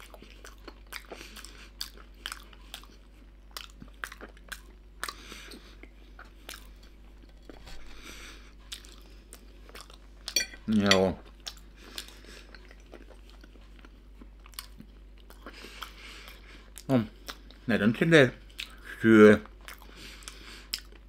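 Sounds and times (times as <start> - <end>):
person chewing: 0.0 - 17.7, 18.4 - 18.8, 19.5 - 21.0.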